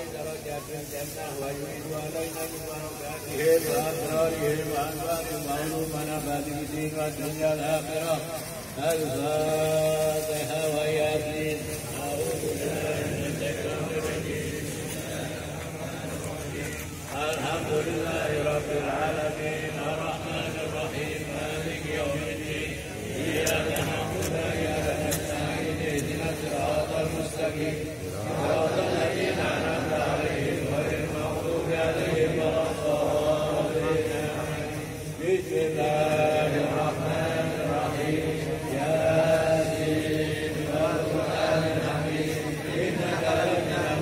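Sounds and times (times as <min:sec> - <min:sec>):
crowd of men chanting in unison: 0:00.0 - 0:44.0.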